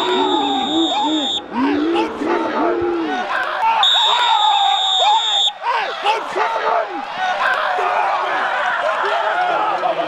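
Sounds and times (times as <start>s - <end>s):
referee's whistle blast: 0.0s - 1.5s, 3.8s - 5.6s
loud shouting voices: 0.0s - 10.0s.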